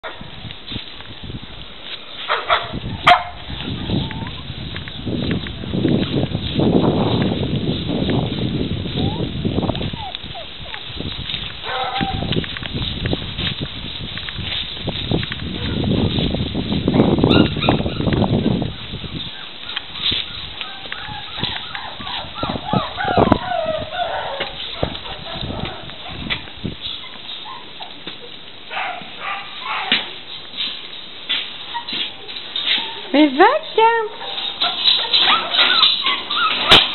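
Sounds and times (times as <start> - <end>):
dog barking: 2.3 - 3.4, 11.6 - 12.3, 24.0 - 26.2, 28.7 - 30.1, 34.1 - 36.9
puppies whining and yelping: 3.8 - 4.5, 9.0 - 10.9, 17.3 - 25.8, 26.9 - 28.4, 31.6 - 32.0, 34.4 - 36.9.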